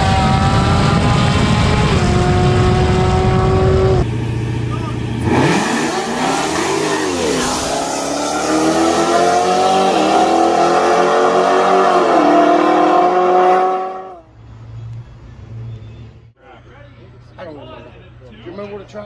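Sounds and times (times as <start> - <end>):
car accelerating hard: 0.0 - 4.1, 5.1 - 14.2
steady car engine note: 0.0 - 14.3.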